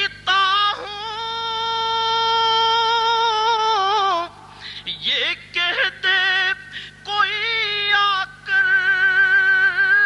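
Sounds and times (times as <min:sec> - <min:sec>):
low electrical hum: 0:00.0 - 0:10.0
person chanting: 0:00.0 - 0:10.0.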